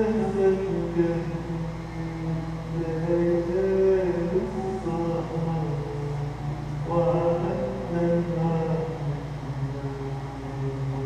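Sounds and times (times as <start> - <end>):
ensemble holding low note: 0.0 - 11.0.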